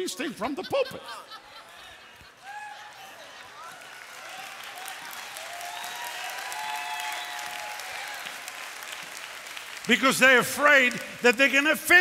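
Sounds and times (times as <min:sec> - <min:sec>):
congregation applauding: 0:02.5 - 0:12.0.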